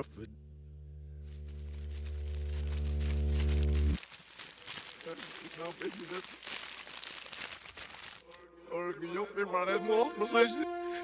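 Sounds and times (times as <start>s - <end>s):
faint crackle: 1.1s - 8.6s.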